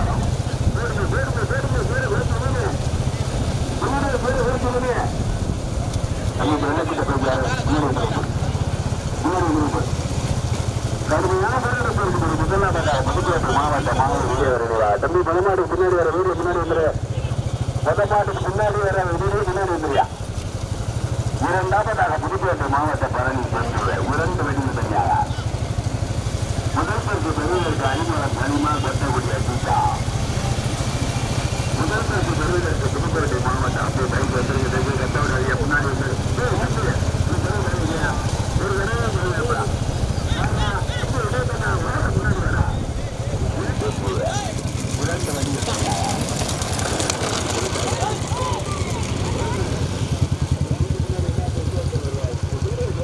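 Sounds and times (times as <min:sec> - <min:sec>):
man commentating over loudspeaker: 0:00.0 - 0:20.3, 0:21.0 - 0:25.9, 0:26.6 - 0:48.7, 0:50.5 - 0:53.0
motorcycle engine running: 0:00.0 - 0:53.0.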